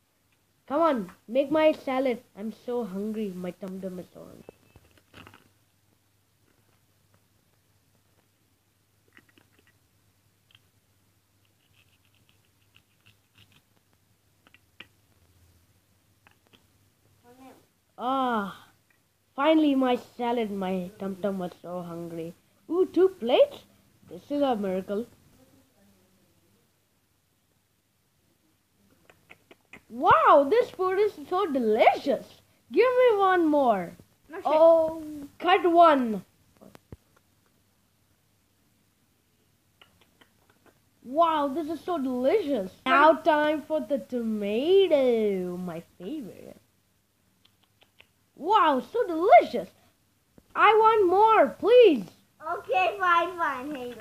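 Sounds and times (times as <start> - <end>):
light scratches and ticks on plastic: 11.4 - 15.4.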